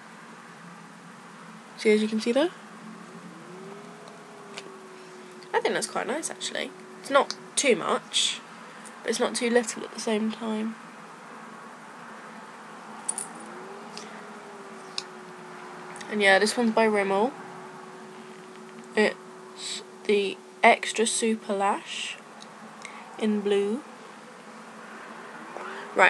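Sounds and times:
faint buzzing hum: 0.0 - 26.0
faint room hiss: 0.0 - 26.0
faint rising tone: 0.5 - 9.1, 10.8 - 20.6.

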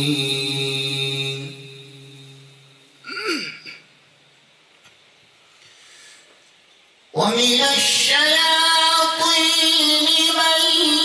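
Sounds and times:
man reciting melodically: 7.2 - 11.0.

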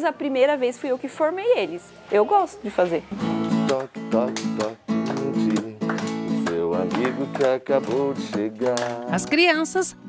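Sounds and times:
acoustic guitar strumming: 2.2 - 10.0
voices singing children's song: 2.2 - 10.0.

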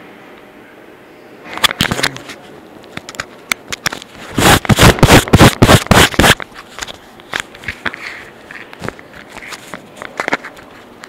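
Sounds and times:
phone microphone handling noise: 3.0 - 10.6.

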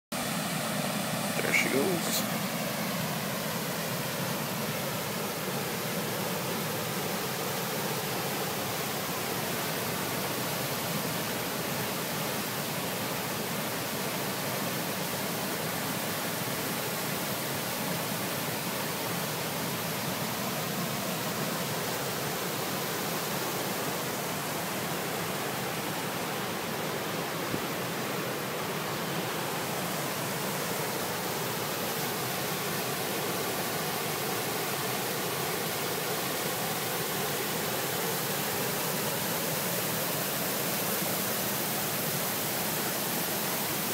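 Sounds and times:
water rushing over dam spillway: 0.2 - 43.9.

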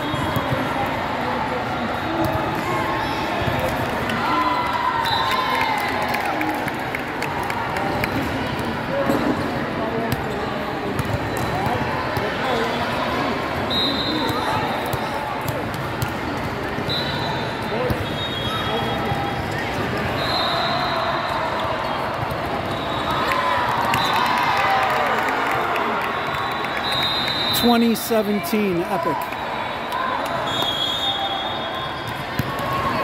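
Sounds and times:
short shrill whistles: 26.2 - 27.6, 29.5 - 32.0.

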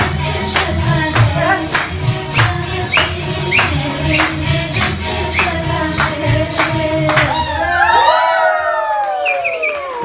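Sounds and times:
music backing track: 0.0 - 8.1
person singing: 0.0 - 8.3.

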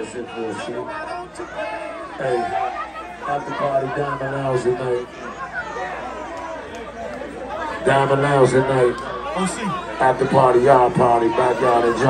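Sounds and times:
people talking: 0.0 - 6.0, 7.0 - 12.0.

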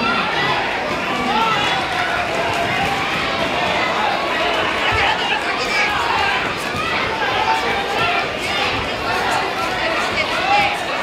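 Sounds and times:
people shouting over each other: 0.0 - 11.0.

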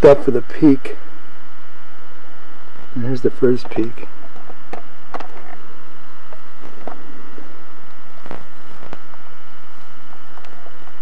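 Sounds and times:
electrical hiss: 0.0 - 11.0
faint high whine: 0.0 - 11.0.

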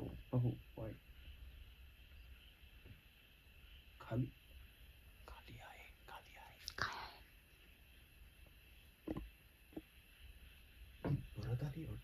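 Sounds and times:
man whispering: 4.0 - 4.4, 5.2 - 7.2.

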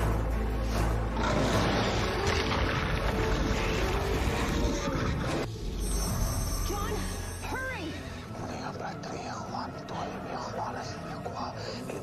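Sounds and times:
dramatic background music: 0.0 - 12.0
creature snarling: 1.2 - 5.5.

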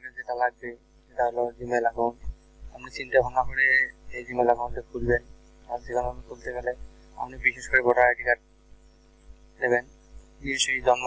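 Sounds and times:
person speaking: 0.0 - 2.2, 2.8 - 8.4, 9.6 - 9.8, 10.5 - 11.0
low electrical hum: 0.0 - 11.0.

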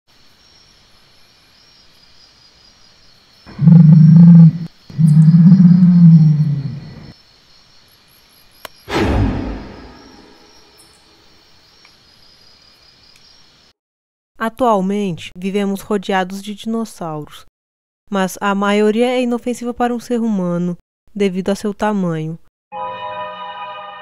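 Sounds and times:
night insects chirping: 0.1 - 13.8
deep dinosaur growls: 3.5 - 7.1
loud hit: 8.9 - 10.6.

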